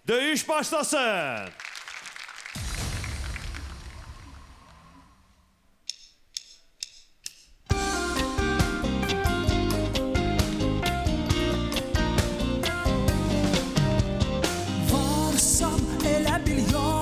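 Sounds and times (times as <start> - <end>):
low boom: 2.6 - 5.3
drumstick clicks counting in: 5.8 - 7.6
live band playing: 7.7 - 17.0.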